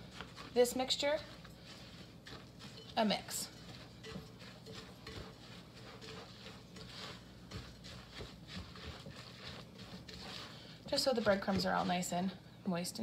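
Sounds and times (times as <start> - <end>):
spatula scraping and squishing mixture: 0.0 - 13.0.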